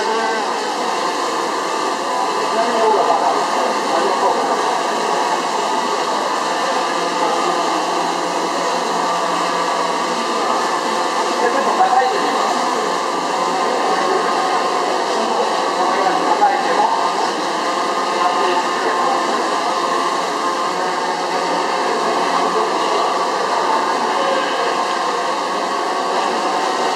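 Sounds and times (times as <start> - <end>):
crowded hall din: 0.0 - 26.9
drone propellers whirring: 0.0 - 26.9.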